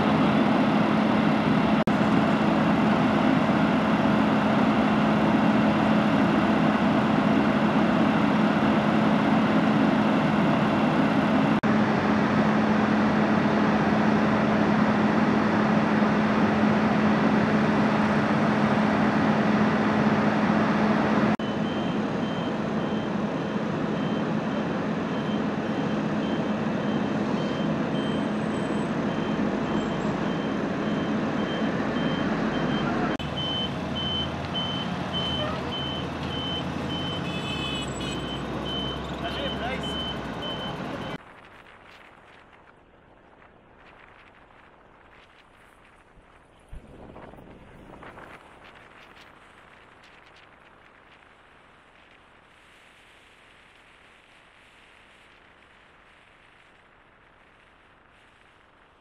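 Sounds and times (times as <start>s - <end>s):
military vehicle engines running: 0.0s - 53.3s
reversing alarm beeps: 21.4s - 41.2s
voices: 32.6s - 33.4s, 34.5s - 41.2s.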